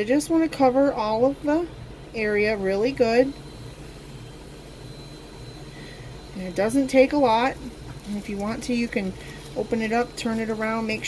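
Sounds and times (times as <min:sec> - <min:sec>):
distant vacuum cleaner running: 0:00.0 - 0:11.0.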